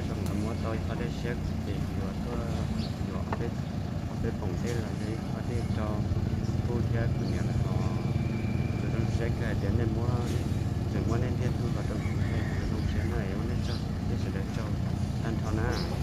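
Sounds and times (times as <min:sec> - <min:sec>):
man talking: 0:00.0 - 0:16.0
motorcycle engine idling: 0:00.0 - 0:16.0.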